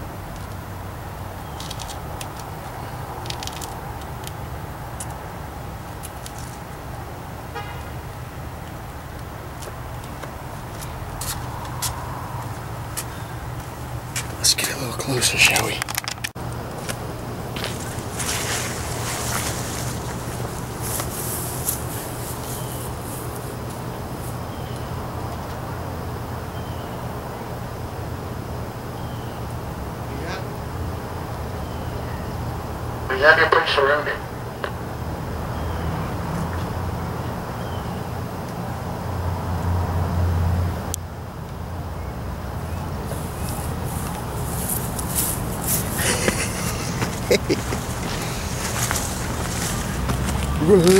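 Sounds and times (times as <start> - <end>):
footsteps on concrete: 9.6 - 14.4, 17.6 - 23.4, 43.2 - 50.9
soft rustles: 17.6 - 24.4, 43.1 - 50.9.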